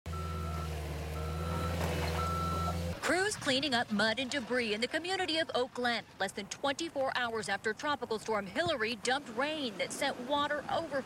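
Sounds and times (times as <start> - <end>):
backup alarm beeping: 0.1 - 3.0
diesel engine running: 0.1 - 4.7.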